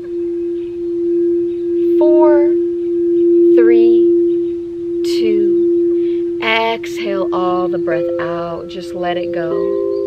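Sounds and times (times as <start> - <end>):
singing bowl low tone: 0.0 - 10.0.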